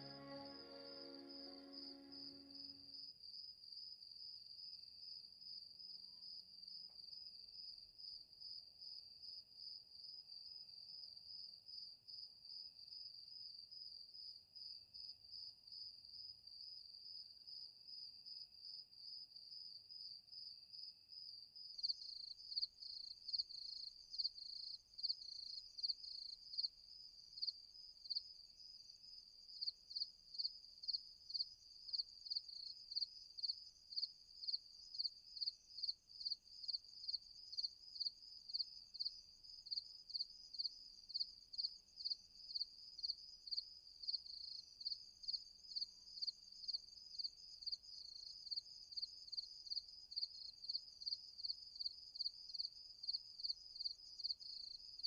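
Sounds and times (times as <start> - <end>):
crickets chirping: 0.0 - 3.0, 21.7 - 55.0.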